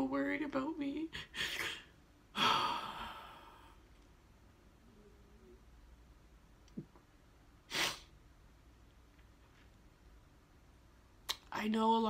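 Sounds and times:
woman sighing: 1.2s - 3.8s.

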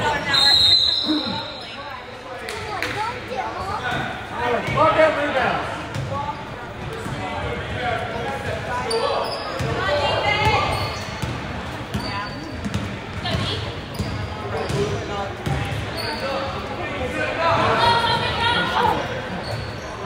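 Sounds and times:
people calling out and talking: 0.0s - 20.0s.

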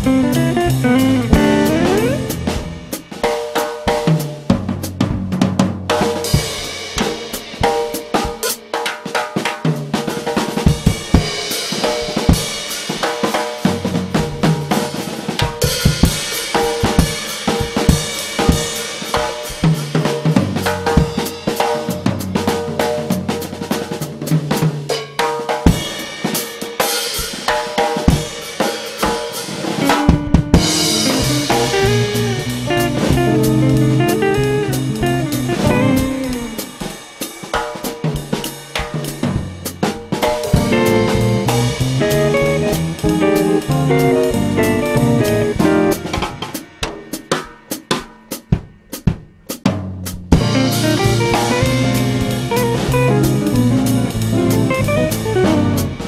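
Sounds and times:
electric bass line: 0.0s - 3.0s, 29.8s - 36.7s, 40.6s - 46.2s, 50.4s - 56.0s
drum kit playing: 0.0s - 56.0s.

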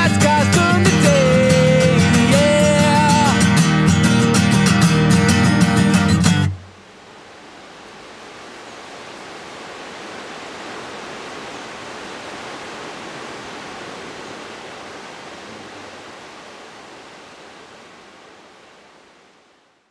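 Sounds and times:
rushing whitewater rapids: 4.6s - 19.9s.

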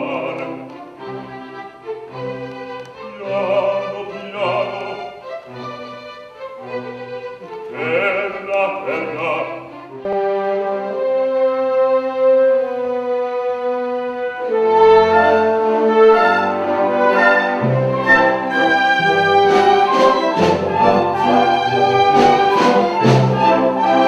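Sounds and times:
male operatic singing: 0.0s - 0.8s, 3.0s - 5.2s, 7.7s - 9.8s
string chamber orchestra: 0.0s - 24.0s.

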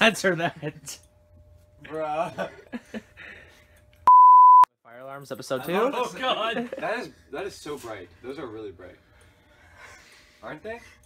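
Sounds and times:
censor bleep: 4.1s - 4.7s.

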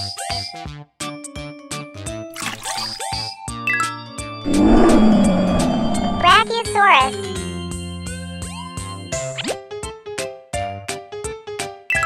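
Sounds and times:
loud roar sound effect: 4.5s - 6.6s.

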